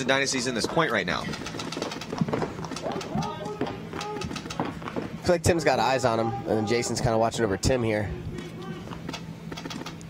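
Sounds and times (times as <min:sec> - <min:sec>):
distant voices: 0:00.0 - 0:09.9
steady low hum: 0:00.0 - 0:10.0.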